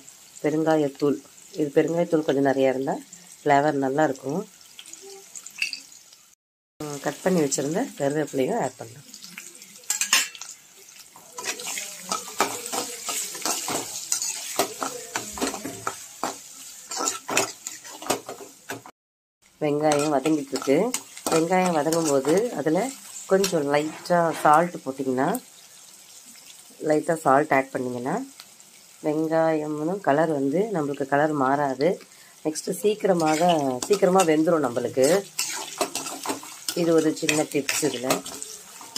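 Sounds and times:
oil sizzling: 0.0 - 38.9
woman narrating: 0.5 - 4.5, 6.8 - 9.0, 19.6 - 25.4, 26.8 - 28.3, 29.0 - 35.3, 36.7 - 38.4
metal spatula scraping frying pan: 9.9 - 10.5, 11.2 - 18.9, 19.8 - 24.7, 33.0 - 38.9.

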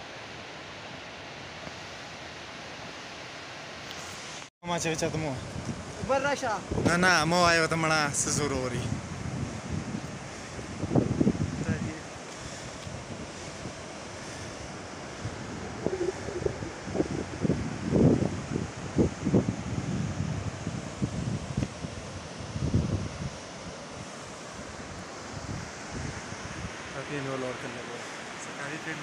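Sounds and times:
wind buffeting microphone: 5.2 - 7.4, 8.4 - 23.8
steady hiss: 20.8 - 29.0.

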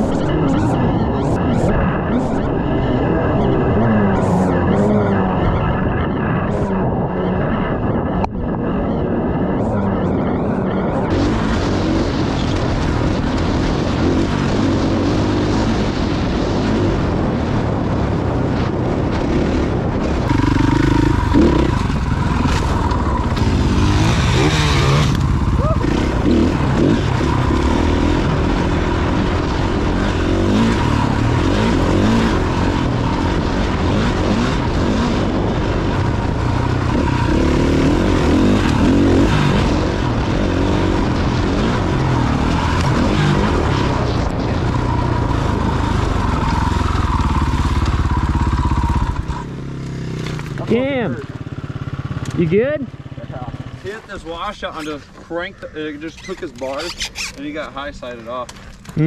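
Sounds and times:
dirt bike engine revving: 0.0 - 7.5, 10.2 - 55.0
steady high whine: 0.0 - 49.8.

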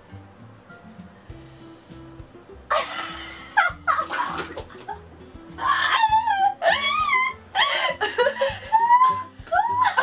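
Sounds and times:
background music: 0.0 - 10.0
high-pitched laughter: 5.6 - 10.0.

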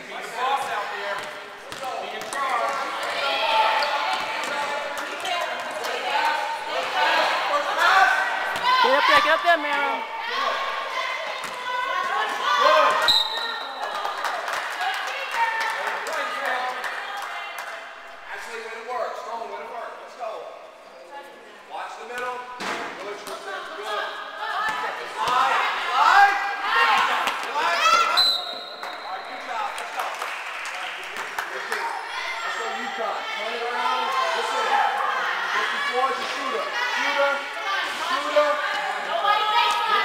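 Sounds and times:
people shouting: 6.1 - 13.1
referee's whistle blast: 13.0 - 13.8, 28.1 - 29.3.

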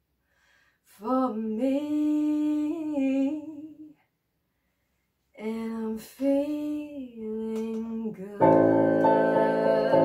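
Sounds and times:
woman singing unaccompanied: 0.9 - 4.0, 5.4 - 10.0.

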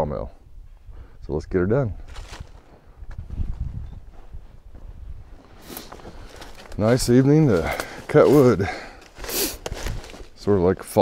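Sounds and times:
footsteps on grass and leaves: 2.0 - 11.0.

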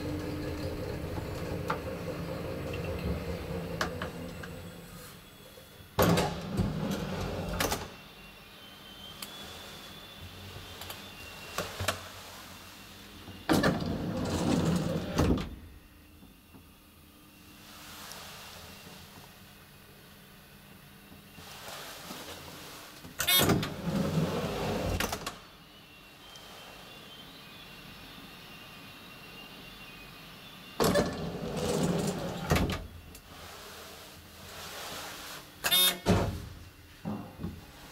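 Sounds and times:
elevator door clunk: 0.0 - 4.7
elevator doors opening: 0.0 - 5.2, 6.0 - 8.0, 13.4 - 15.6, 23.2 - 25.4, 30.8 - 33.0
mechanical hum: 0.0 - 37.9.

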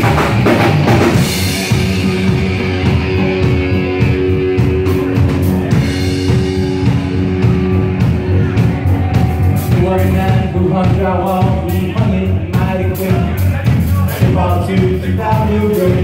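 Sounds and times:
distorted electric guitar: 0.0 - 16.0
drum kit: 0.0 - 16.0
electric bass: 0.0 - 16.0.

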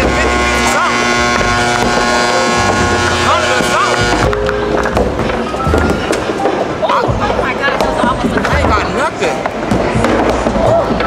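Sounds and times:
arcade machine electronic tones: 0.0 - 4.4
balls rolling up wooden lanes: 0.0 - 11.0.

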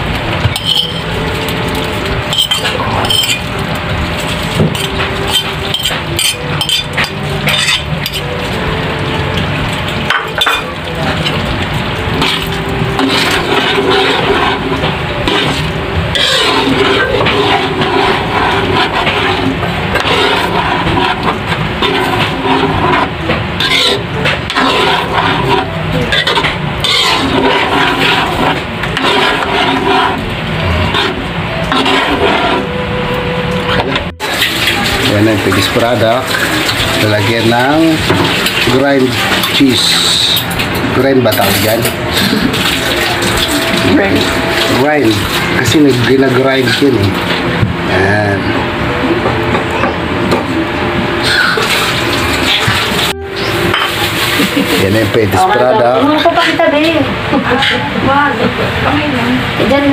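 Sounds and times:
metal spoon scraping sauce in pan: 4.8 - 8.2, 12.2 - 30.2, 30.9 - 32.6.

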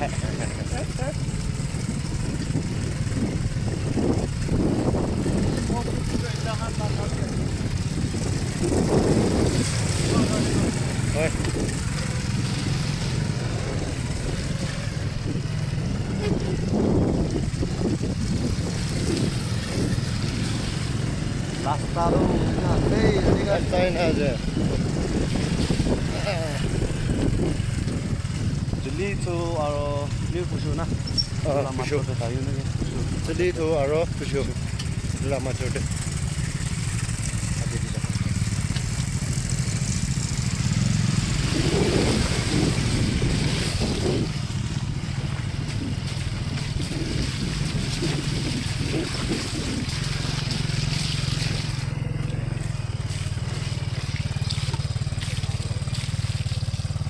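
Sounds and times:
motorcycle engines running: 0.0 - 57.0.

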